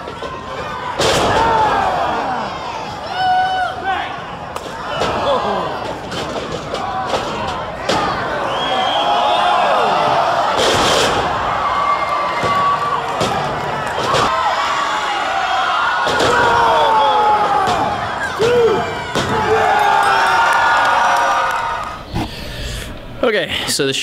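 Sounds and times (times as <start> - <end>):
crowd cheering and shouting: 0.0 - 22.1.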